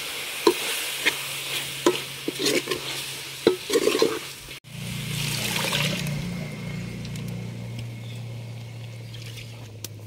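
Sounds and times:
spoon stirring and scraping pot: 0.4s - 4.5s.

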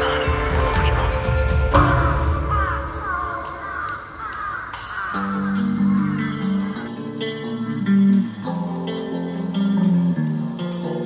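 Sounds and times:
clean plucked guitar riff: 5.2s - 11.0s.

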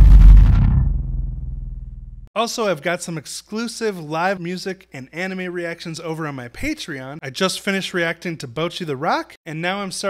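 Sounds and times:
deep bass-heavy outro sound: 0.0s - 2.3s.

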